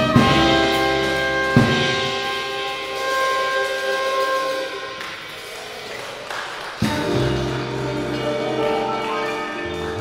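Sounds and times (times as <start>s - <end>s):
trumpet and saxophone chord: 0.0s - 5.5s, 6.8s - 10.0s
jazz combo playing: 0.0s - 10.0s.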